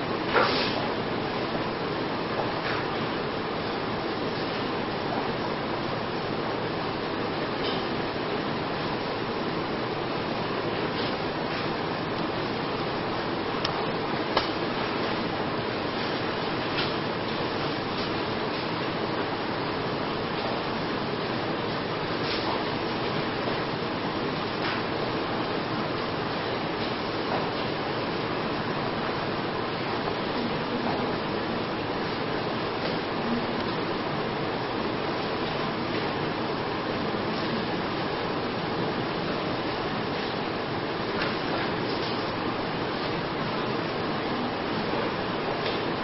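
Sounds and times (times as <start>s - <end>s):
room noise hiss: 0.0s - 46.0s.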